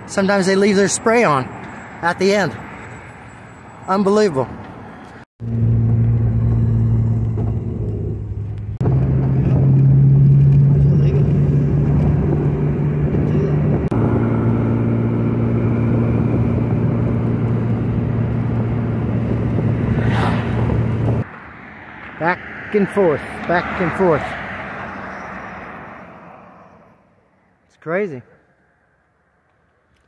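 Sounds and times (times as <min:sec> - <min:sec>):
car engine and road hum: 0:00.0 - 0:30.0.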